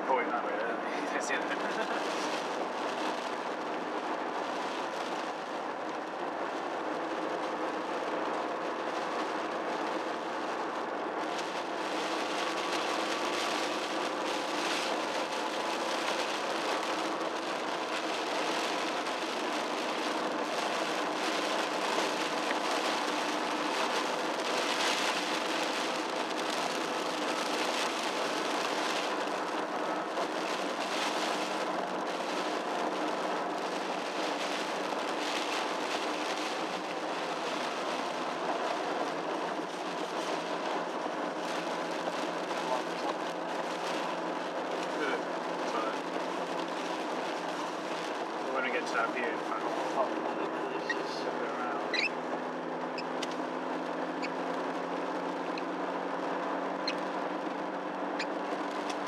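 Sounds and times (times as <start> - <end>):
car engine drone: 0.0 - 59.0
tyre hiss on wet road: 0.6 - 59.0.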